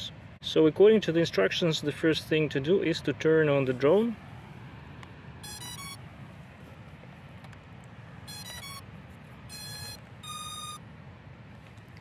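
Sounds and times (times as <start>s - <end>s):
drone start-up beeps: 5.4s - 6.0s, 8.3s - 8.9s, 9.5s - 10.8s.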